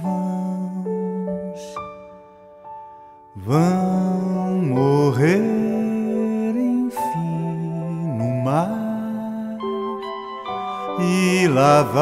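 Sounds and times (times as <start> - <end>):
man singing sustained line: 0.0 - 2.1, 3.4 - 12.0
soft held accompaniment notes: 3.4 - 12.0.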